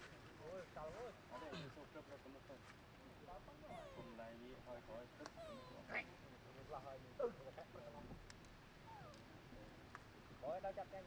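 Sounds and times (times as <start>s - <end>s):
monkeys cooing and squeaking: 3.7s - 4.2s, 5.3s - 5.9s.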